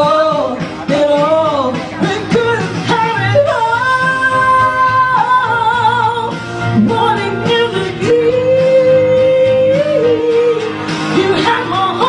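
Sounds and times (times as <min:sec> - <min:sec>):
backing music: 0:00.0 - 0:12.0
woman singing into microphone: 0:00.0 - 0:12.0.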